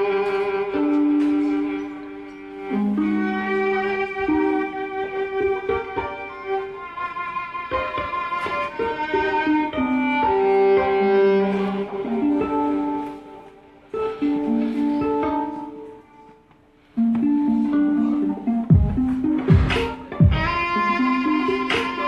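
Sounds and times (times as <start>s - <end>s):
bowed violin sustained notes: 0.0s - 22.0s
deep thumps: 18.7s - 20.6s.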